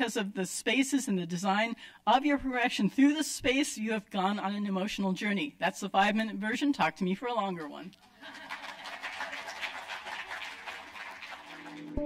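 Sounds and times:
audience applause: 8.2 - 12.0.

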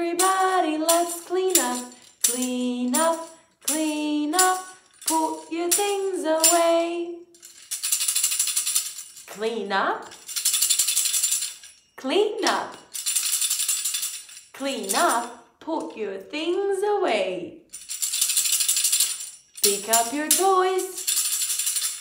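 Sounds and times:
woman singing: 0.0 - 7.2, 14.6 - 17.5, 19.6 - 21.1
tambourine jingling: 0.0 - 15.5, 17.7 - 22.0.

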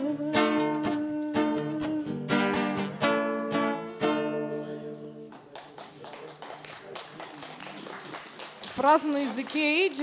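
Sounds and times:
audience clapping: 5.2 - 10.0.

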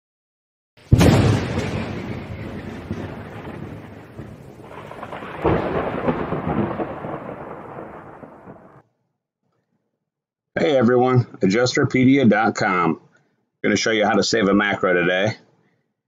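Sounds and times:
sharp thunderclap: 0.9 - 8.8
thunder rumbling: 0.9 - 8.8.

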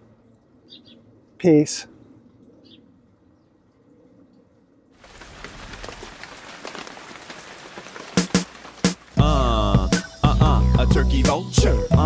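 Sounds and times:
bird chirp: 0.2 - 1.3, 1.9 - 4.4
crackling hiss: 5.0 - 10.3.

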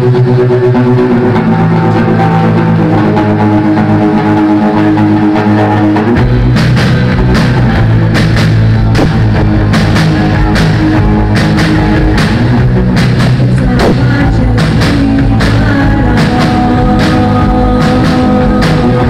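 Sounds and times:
live rock band playing: 0.0 - 19.0.

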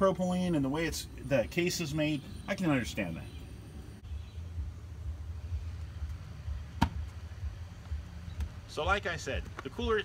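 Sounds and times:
steady low rumble: 3.2 - 9.9.

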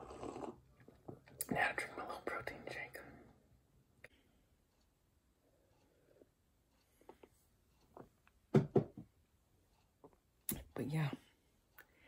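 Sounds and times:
person gulping a thick shake: 0.0 - 1.0.

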